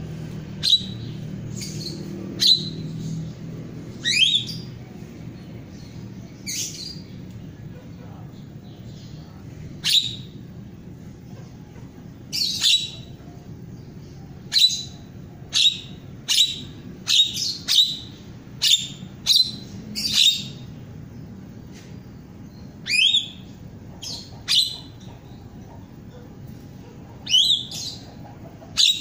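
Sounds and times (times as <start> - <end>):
starling calling: 0.4 - 4.8, 8.8 - 10.5, 11.5 - 13.4, 14.1 - 20.9, 22.5 - 29.0.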